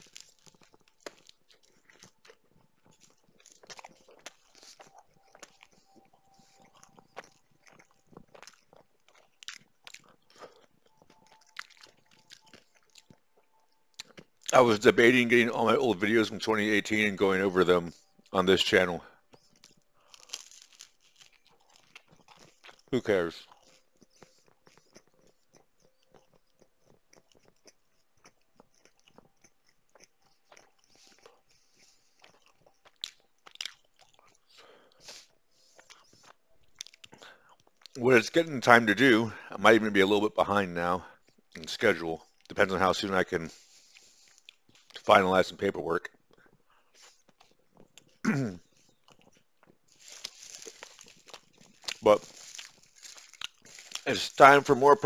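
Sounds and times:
person chewing crunchy food: 0:00.0 - 0:55.0
lip smacks: 0:46.3 - 0:54.4.

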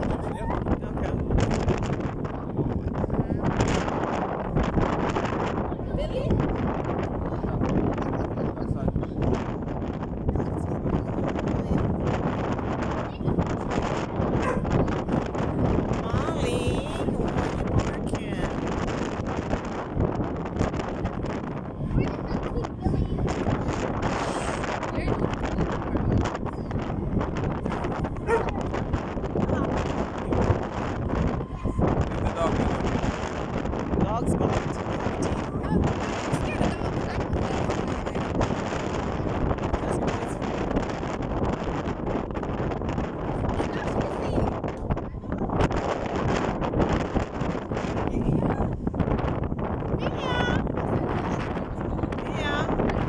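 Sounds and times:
faint voices: 0:00.0 - 0:41.9, 0:43.0 - 0:49.0, 0:49.9 - 0:53.0
ferry engine rumble: 0:00.0 - 0:53.0
wind buffeting microphone: 0:00.0 - 0:53.0.

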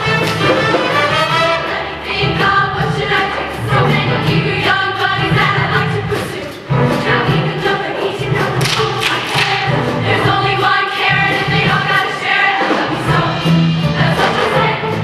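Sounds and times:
live band with steady beat: 0:00.0 - 0:02.6, 0:03.2 - 0:15.0
female choir singing: 0:01.1 - 0:15.0.

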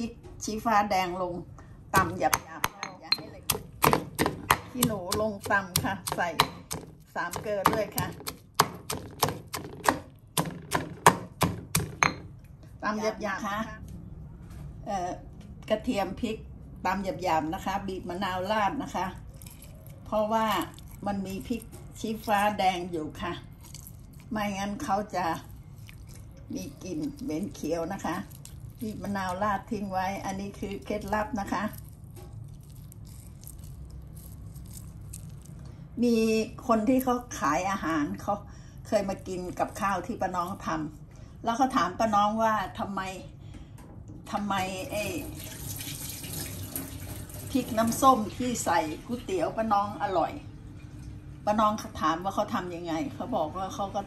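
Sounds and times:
stone pestle pounding in mortar: 0:02.0 - 0:12.3
small wet crackles: 0:19.2 - 0:22.6, 0:23.4 - 0:35.8.

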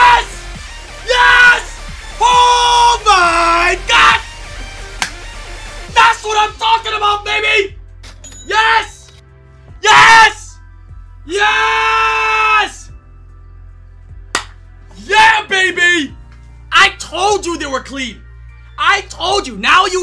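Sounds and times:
man screaming and yelling: 0:00.0 - 0:04.3, 0:05.9 - 0:07.8, 0:08.5 - 0:09.1, 0:09.8 - 0:10.6, 0:11.2 - 0:13.0, 0:15.0 - 0:16.2
background music: 0:00.0 - 0:20.0.

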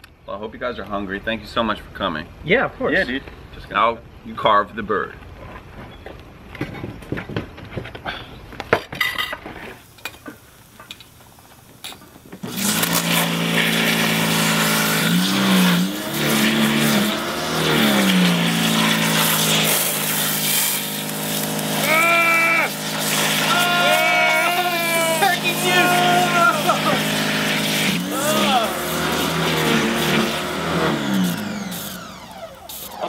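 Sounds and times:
water spray blasting: 0:09.9 - 0:33.0
pressure washer running: 0:12.3 - 0:33.0.

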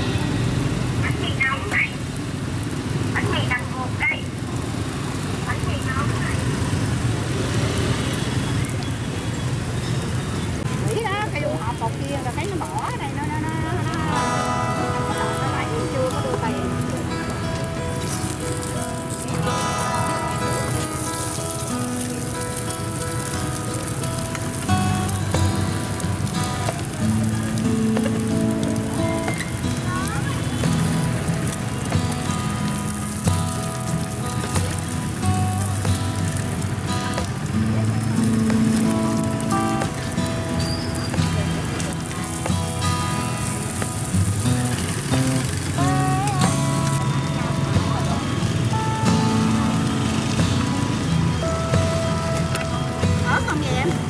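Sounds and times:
food sizzling in oil: 0:00.0 - 0:54.0
background music: 0:13.2 - 0:40.6, 0:41.3 - 0:54.0.

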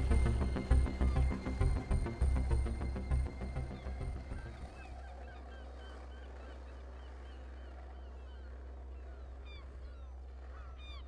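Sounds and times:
birds chirping: 0:00.0 - 0:11.0
steady low hum: 0:00.0 - 0:11.0.

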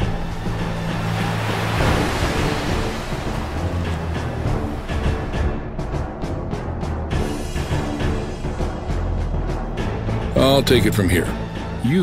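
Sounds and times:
rushing ocean water: 0:00.0 - 0:10.1
low sustained music: 0:00.0 - 0:12.0.

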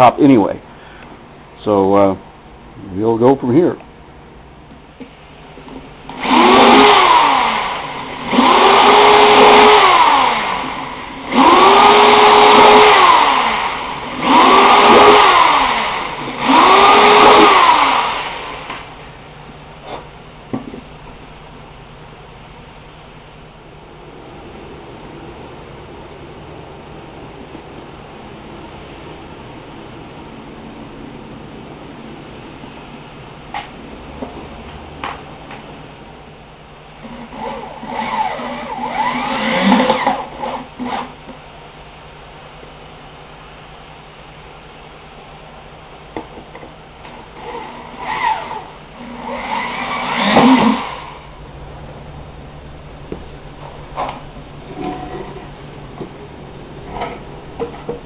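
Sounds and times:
electric power tool motor whining: 0:06.1 - 0:18.9, 0:37.0 - 0:41.2, 0:47.0 - 0:51.3.

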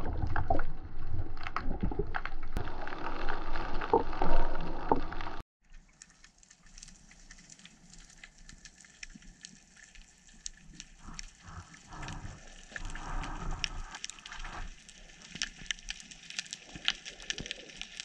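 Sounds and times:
water swishing: 0:00.0 - 0:18.0
crackle of tiny reef clicks: 0:01.4 - 0:18.0.

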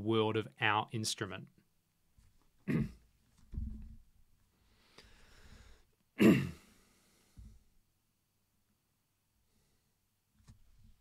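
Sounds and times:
soft low thump: 0:03.5 - 0:04.0
man breathing in: 0:04.6 - 0:06.0, 0:06.6 - 0:07.6.

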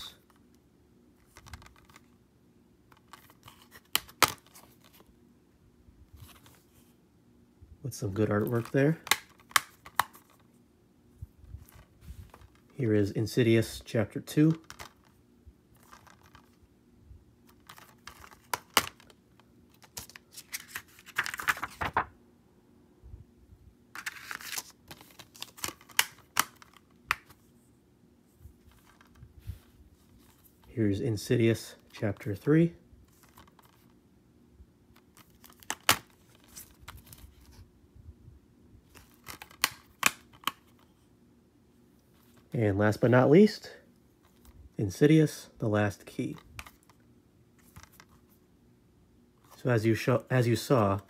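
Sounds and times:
plastic case rustle: 0:11.5 - 0:12.7, 0:14.4 - 0:16.6, 0:17.5 - 0:22.1, 0:28.5 - 0:30.7, 0:47.6 - 0:48.4.

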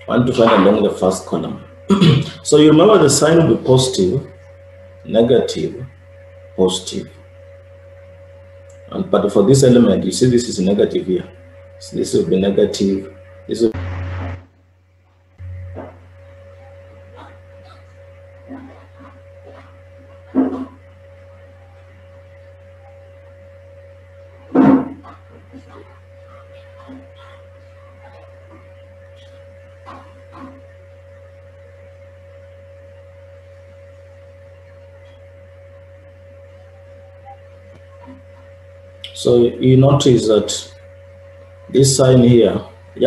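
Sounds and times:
low electrical hum: 0:00.0 - 0:43.0.

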